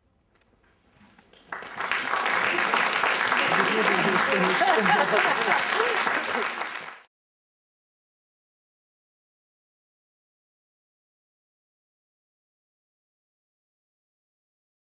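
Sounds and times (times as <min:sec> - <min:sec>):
audience applause: 0:01.4 - 0:07.1.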